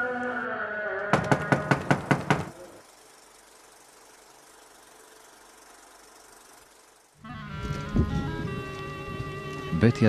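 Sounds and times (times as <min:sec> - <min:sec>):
hand knocking on metal door: 0:01.2 - 0:02.5.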